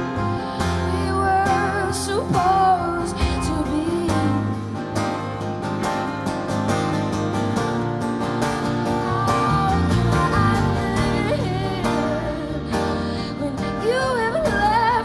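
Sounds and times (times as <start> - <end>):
bass: 0.0 - 15.0
strummed acoustic guitar: 0.0 - 15.0.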